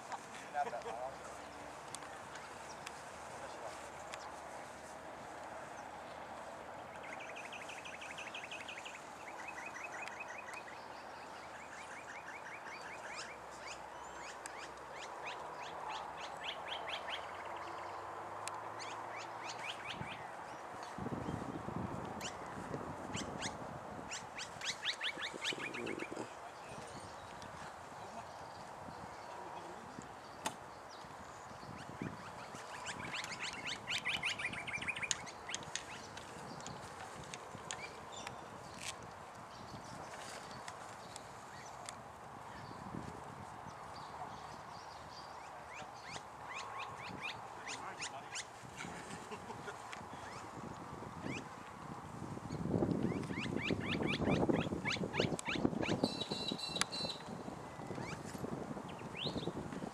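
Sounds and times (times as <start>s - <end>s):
birds chattering trills: 6.9s - 18.1s, 18.8s - 21.6s, 22.2s - 43.0s, 43.7s - 51.6s, 52.5s - 59.6s.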